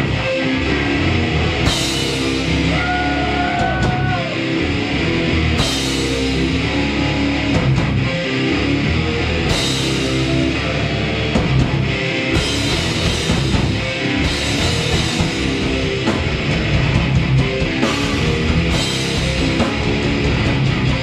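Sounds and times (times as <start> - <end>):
bass guitar: 0.0 - 21.0
distorted electric guitars: 0.0 - 21.0
drum kit: 0.0 - 21.0.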